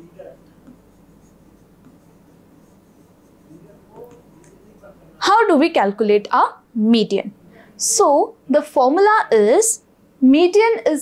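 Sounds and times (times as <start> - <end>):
stylus tapping and scratching glass: 0.2 - 4.8.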